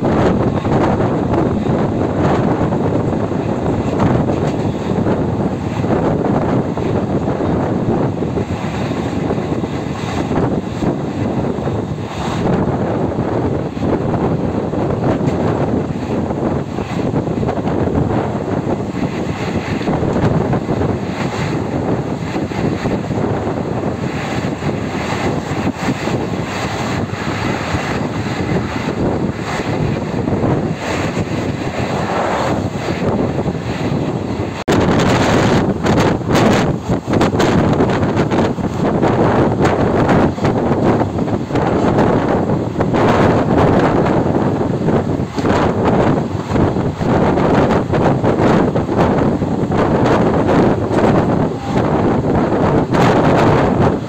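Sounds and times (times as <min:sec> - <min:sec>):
train rolling noise: 0:00.0 - 0:54.0
wind buffeting microphone: 0:00.0 - 0:54.0.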